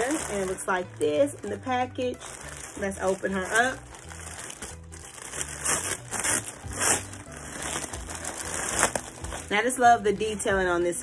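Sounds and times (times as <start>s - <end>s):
plastic bag crinkling: 0.0s - 10.6s.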